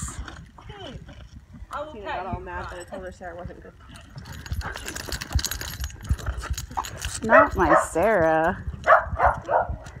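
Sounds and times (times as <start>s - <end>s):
dog paws scuffling on concrete: 0.0s - 10.0s.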